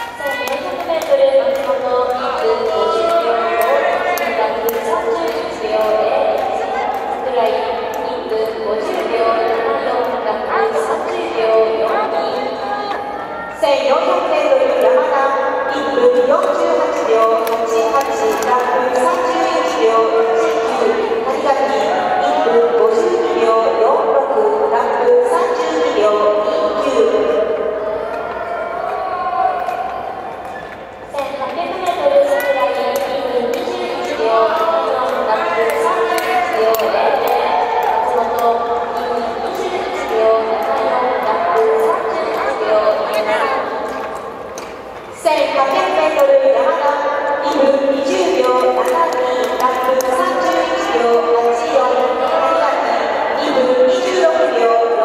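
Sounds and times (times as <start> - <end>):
voices calling out in echoing hall: 0.0 - 55.0.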